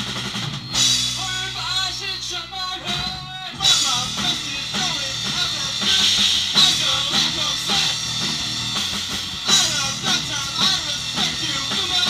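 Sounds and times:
bass guitar: 0.0 - 12.0
drum kit beat: 0.0 - 12.0
electric guitar: 2.8 - 12.0.

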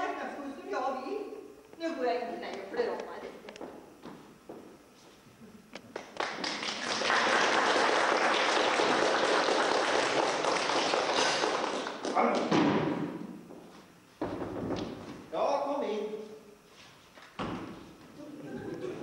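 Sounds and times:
audience applauding: 5.9 - 12.4.

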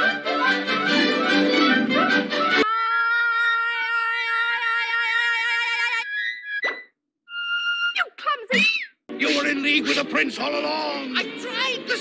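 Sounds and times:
background music: 0.0 - 2.6, 9.1 - 12.0
flute playing shrill notes: 7.3 - 8.0.

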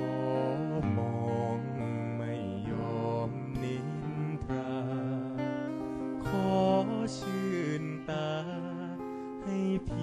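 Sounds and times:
acoustic guitar: 0.0 - 10.0
sustained melody line: 0.0 - 10.0.

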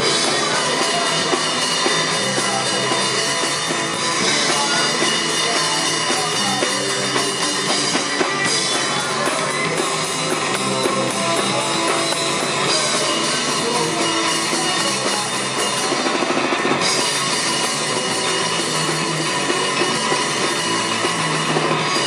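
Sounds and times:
punk rock band playing: 0.0 - 22.0.

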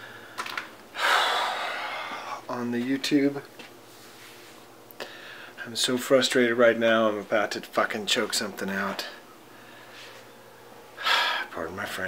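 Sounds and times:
man sighing heavily: 1.0 - 2.4.

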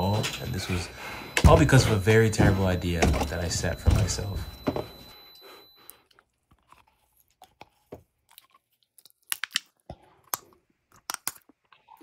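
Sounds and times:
chewing wax crunches: 6.0 - 12.0.

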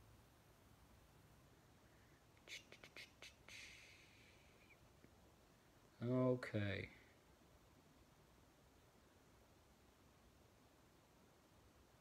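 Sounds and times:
faint whispering: 2.1 - 4.9.

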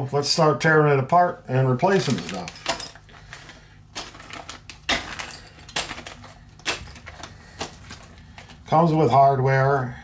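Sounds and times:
metal parts clicking together: 1.9 - 3.1
plastic bags crinkling: 1.9 - 8.6.

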